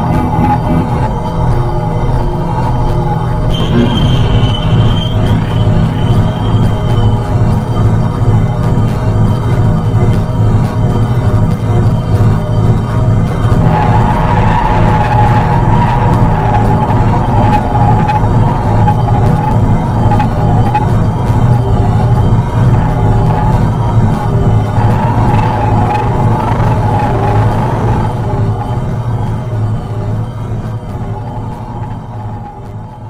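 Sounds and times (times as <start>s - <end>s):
higher synth tone: 0.0s - 10.4s, 12.2s - 33.0s
electronic synth drone: 0.0s - 33.0s
steady low hum: 0.0s - 33.0s.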